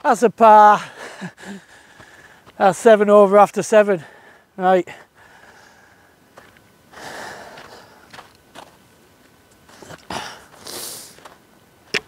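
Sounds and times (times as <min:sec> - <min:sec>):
person breathing: 0:00.8 - 0:02.6, 0:04.0 - 0:08.3, 0:09.7 - 0:11.2
footsteps on snow: 0:01.8 - 0:03.1, 0:04.9 - 0:12.0.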